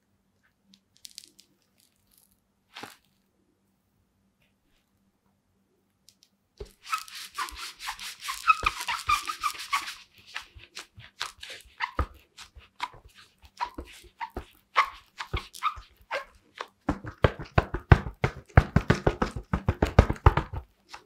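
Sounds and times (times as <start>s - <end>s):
gloves squeaking against football: 6.6s - 21.0s.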